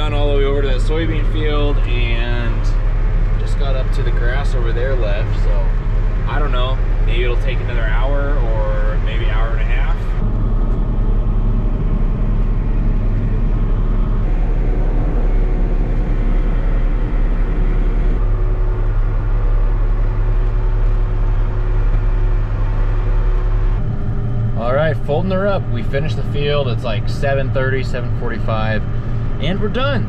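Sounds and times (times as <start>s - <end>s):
tractor engine droning under load: 0.0s - 30.0s.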